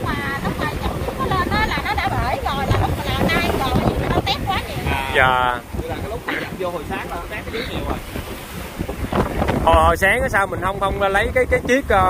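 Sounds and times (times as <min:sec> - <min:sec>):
waves washing over rocky shore: 0:00.0 - 0:12.0
wind buffeting microphone: 0:00.0 - 0:12.0.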